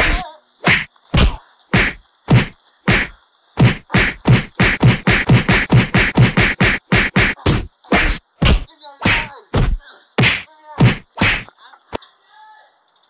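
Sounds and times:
punch and smack impacts: 0:00.0 - 0:11.5.

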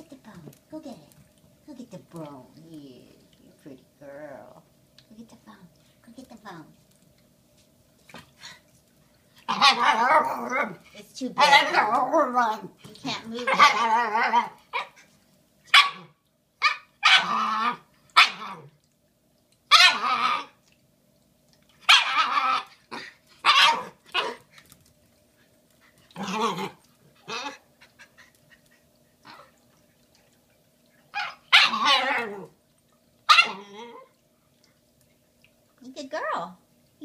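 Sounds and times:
puppy barking and yipping: 0:15.7 - 0:17.3, 0:19.7 - 0:20.1, 0:21.9 - 0:22.7, 0:23.4 - 0:24.4, 0:31.1 - 0:32.2, 0:33.3 - 0:33.6.

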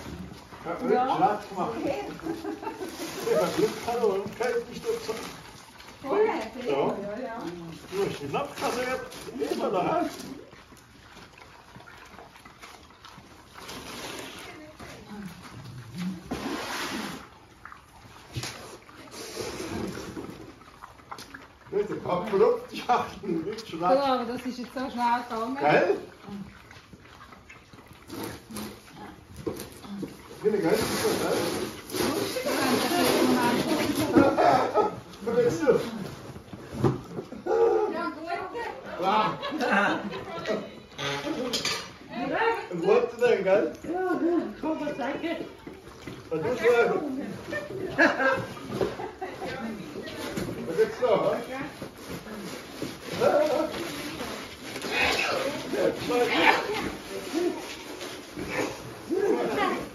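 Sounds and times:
pigs snuffling and chewing: 0:00.0 - 0:59.9
pigs grunting: 0:54.7 - 0:56.8.

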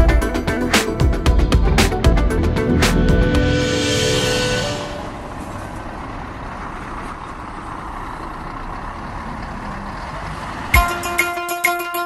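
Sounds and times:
plucked guitar music: 0:00.0 - 0:03.7, 0:10.8 - 0:12.0
outdoor background rush: 0:00.0 - 0:11.6.

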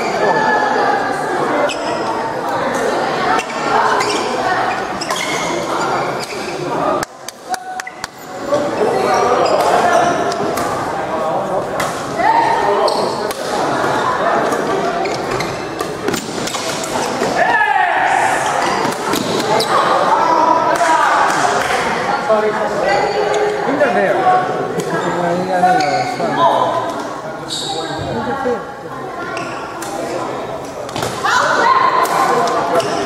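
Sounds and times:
many voices talking and calling: 0:00.0 - 0:33.0.

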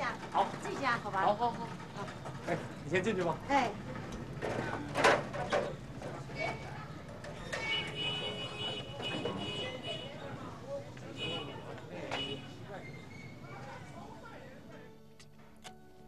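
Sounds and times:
street background noise: 0:00.0 - 0:16.0.

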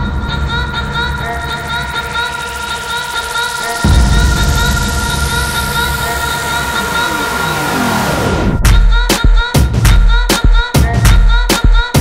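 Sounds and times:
noise sweep with falling pitch glide: 0:00.0 - 0:08.7
dance beat with heavy bass kicks: 0:00.0 - 0:12.0.

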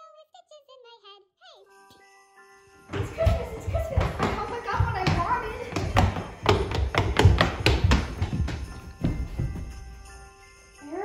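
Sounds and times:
footsteps on wooden stairs: 0:02.9 - 0:10.4.

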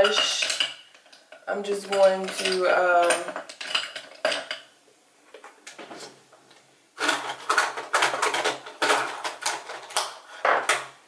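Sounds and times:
hard containers clattering: 0:00.0 - 0:06.2, 0:07.0 - 0:11.0
clicks and knocks: 0:07.0 - 0:11.0.

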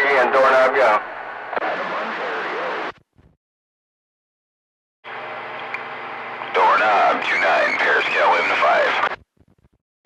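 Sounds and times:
faint garbled radio voice: 0:00.0 - 0:01.0, 0:01.6 - 0:02.9, 0:06.5 - 0:09.2
radio receiver hiss: 0:06.3 - 0:09.8.

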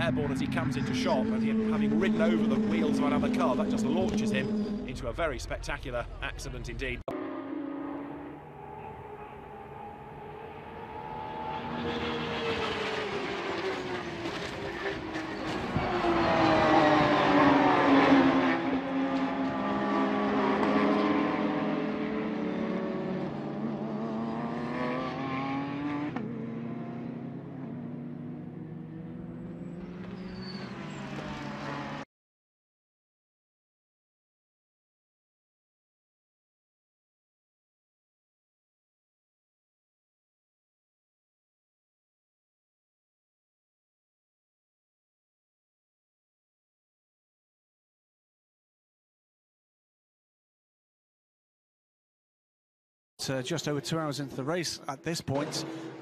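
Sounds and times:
race car engines passing: 0:00.0 - 0:32.0, 0:53.5 - 0:56.0.

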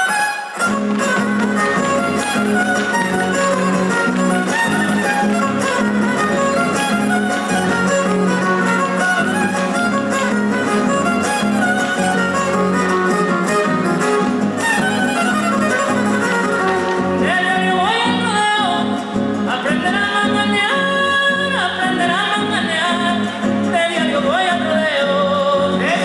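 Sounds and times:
strummed guitars: 0:00.0 - 0:26.0
violin: 0:00.0 - 0:26.0
person singing: 0:16.4 - 0:26.0.

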